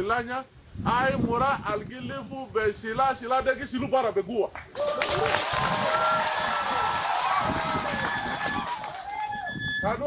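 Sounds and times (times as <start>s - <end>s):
crowd clapping: 4.6s - 9.4s.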